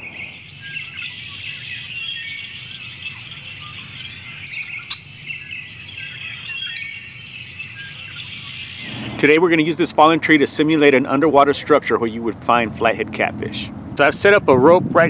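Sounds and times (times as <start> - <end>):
birds chirping and singing: 0.0 - 10.9.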